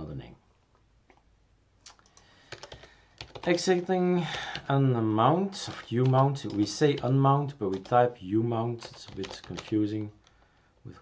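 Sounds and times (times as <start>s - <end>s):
computer keyboard keystrokes: 1.9s - 3.7s, 4.3s - 4.7s, 5.6s - 10.8s.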